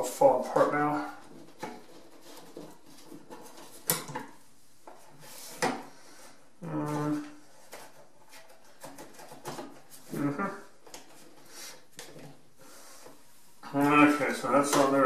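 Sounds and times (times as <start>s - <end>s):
person humming: 10.1s - 10.7s.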